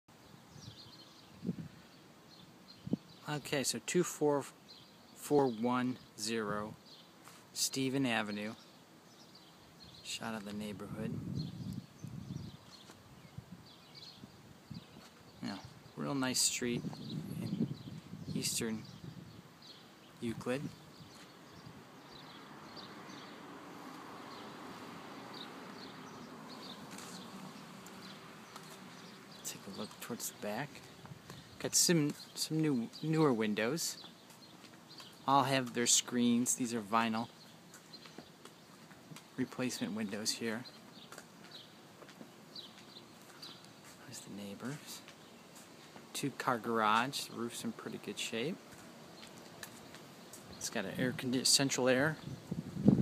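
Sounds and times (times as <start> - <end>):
small birds chirping: 0.1 - 53.0.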